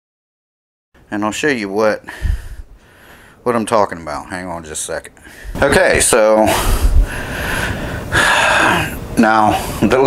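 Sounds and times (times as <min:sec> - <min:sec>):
man breathing: 0:02.0 - 0:03.4, 0:05.2 - 0:05.6, 0:06.5 - 0:09.9.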